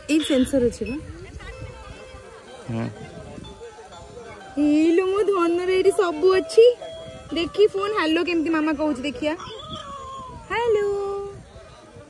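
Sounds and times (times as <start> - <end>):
toy phone playing a tune: 0.0 - 11.0.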